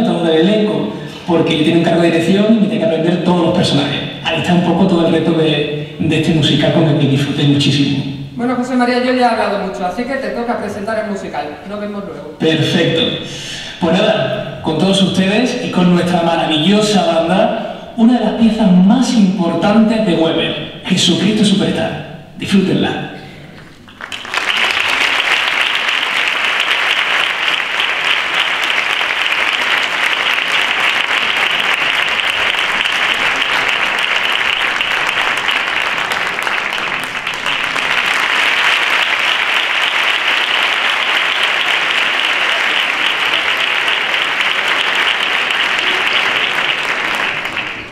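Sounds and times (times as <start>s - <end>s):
audience applauding: 23.7s - 47.9s.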